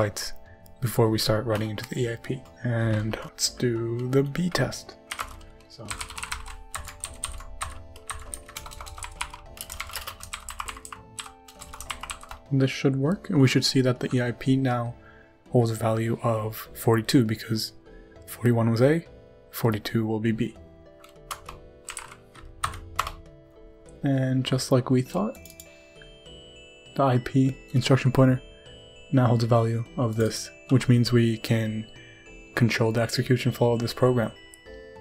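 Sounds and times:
quiet background music: 0.0 - 35.0
keyboard typing: 1.4 - 12.5, 21.0 - 23.3, 25.3 - 25.8, 30.0 - 31.6.

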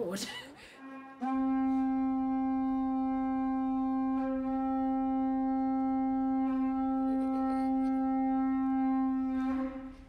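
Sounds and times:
wind instrument holding a note: 0.9 - 10.0.

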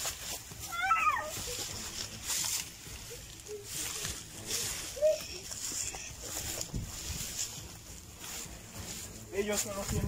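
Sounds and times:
rustle of dry straw: 0.0 - 10.0.

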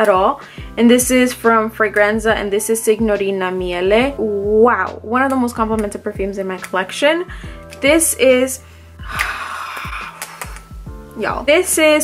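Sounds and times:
background music with steady beat: 0.0 - 12.0
woman sighing breathily: 9.0 - 10.8.

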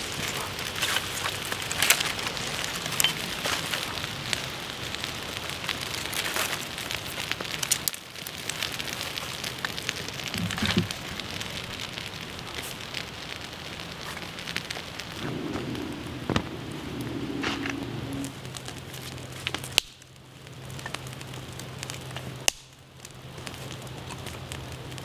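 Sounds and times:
fire hiss: 0.0 - 25.0
wood fire crackling and popping: 0.0 - 25.0.

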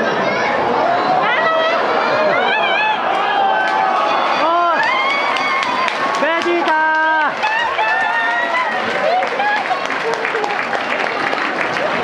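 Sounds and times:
crowd shouting and cheering: 0.0 - 12.0
long drawn-out shout: 0.2 - 11.0.

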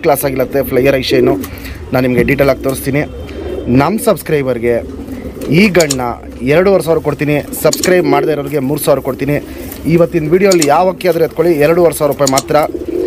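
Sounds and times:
pigeon cooing: 0.8 - 10.7, 12.2 - 13.0.

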